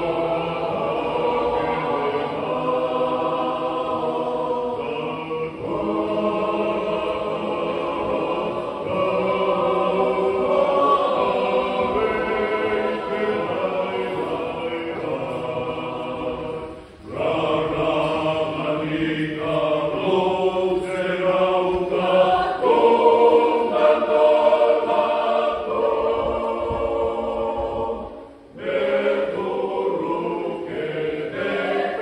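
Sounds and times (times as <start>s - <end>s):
choir singing unaccompanied: 0.0s - 32.0s.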